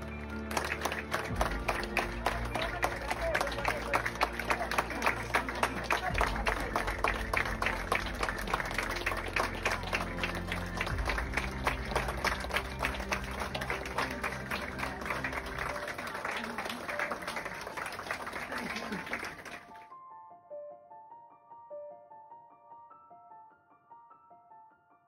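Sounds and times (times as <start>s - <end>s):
crowd applauding: 0.0s - 19.9s
background music: 0.0s - 25.0s.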